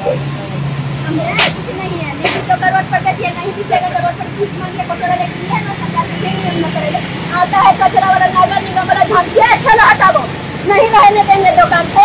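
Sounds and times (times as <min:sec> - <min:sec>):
indistinct voices and chatter: 0:00.0 - 0:12.0
low traffic hum: 0:00.0 - 0:12.0.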